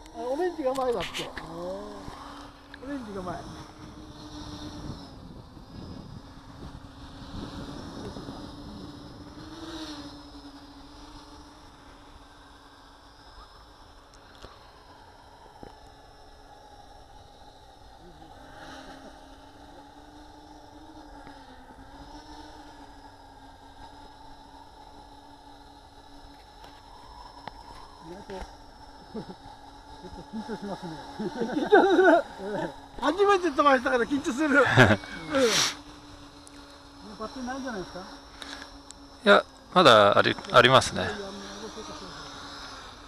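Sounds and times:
quadcopter motors buzzing: 0.0 - 43.0.

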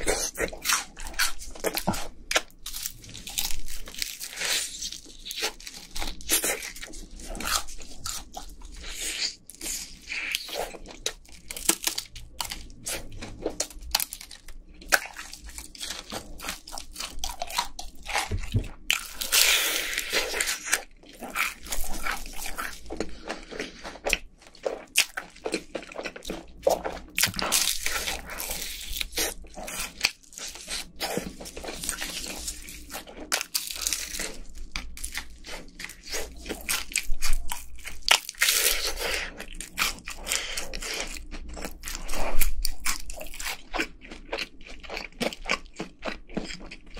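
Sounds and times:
crunchy chewing: 0.0 - 46.9.

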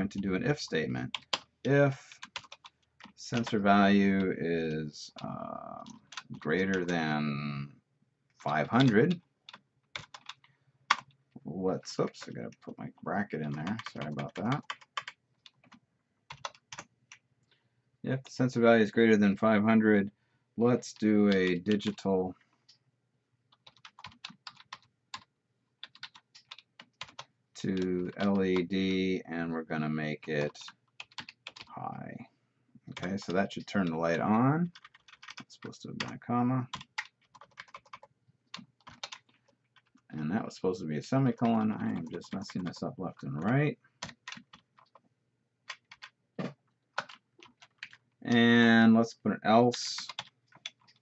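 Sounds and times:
typing on computer keyboard: 1.1 - 1.5, 2.1 - 3.6, 8.5 - 11.2, 13.4 - 17.2, 23.5 - 28.4, 30.4 - 31.7, 34.7 - 40.0, 41.4 - 42.8, 43.4 - 45.0, 45.7 - 48.1, 50.0 - 51.0
computer keyboard keystrokes: 8.7 - 11.2, 23.6 - 25.2, 25.8 - 27.2, 34.8 - 40.0, 45.7 - 48.0.

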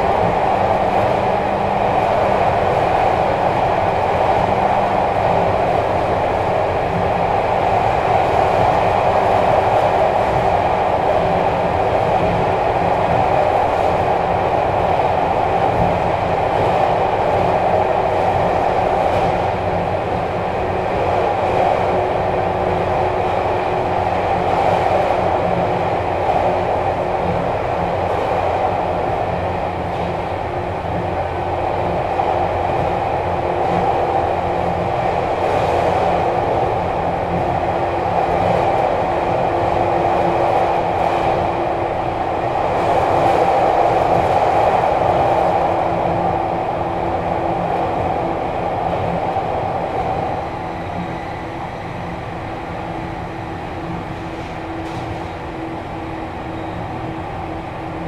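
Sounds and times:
train interior rumble: 0.0 - 58.0.

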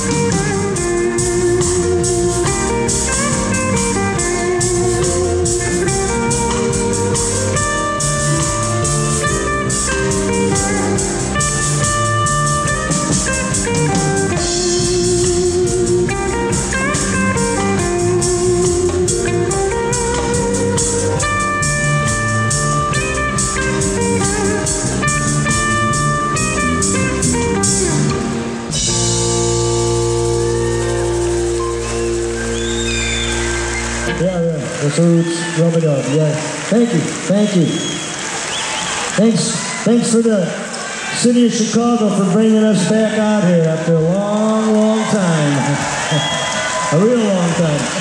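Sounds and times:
live band playing instrumental: 0.0 - 35.8.

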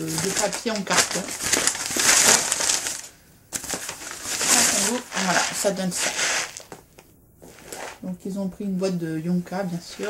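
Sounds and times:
paper wrapping rustling and crinkling: 0.0 - 6.8.

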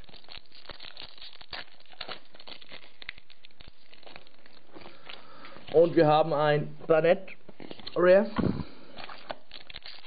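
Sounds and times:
foil wrapper crinkling and tearing: 0.0 - 6.7, 7.6 - 10.0.

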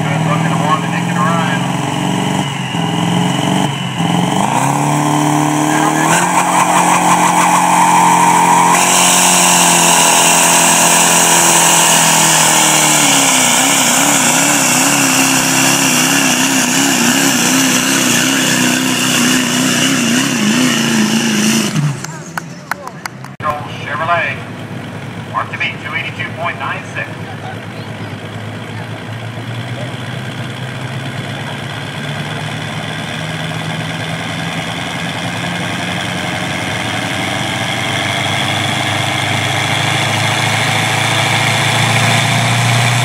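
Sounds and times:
diesel truck engine revving: 0.0 - 43.0.

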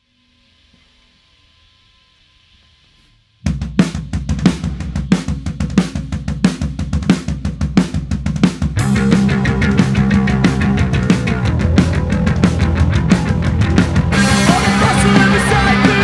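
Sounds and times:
drum kit playing: 3.5 - 16.0.

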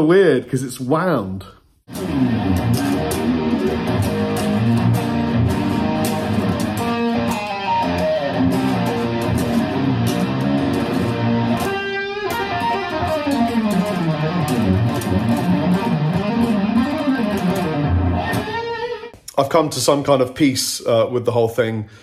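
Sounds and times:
electric guitar fast picking: 1.9 - 19.1.

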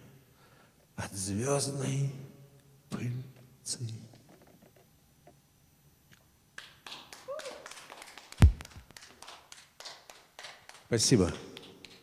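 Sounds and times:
audience clapping: 6.6 - 12.0.

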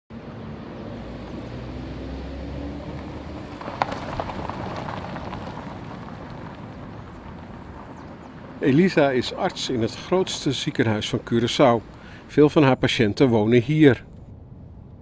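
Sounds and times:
car engine and road hum: 0.1 - 15.0
street background: 0.1 - 15.0.

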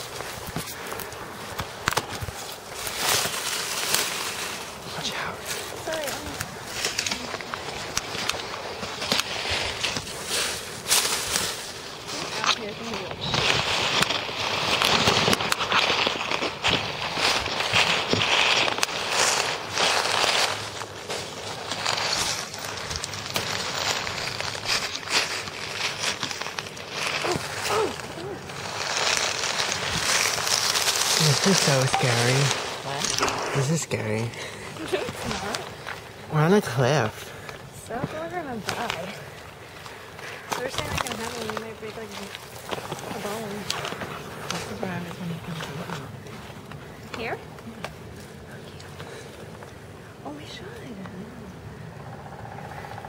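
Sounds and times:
footsteps crunching through dry leaves: 0.0 - 50.8.

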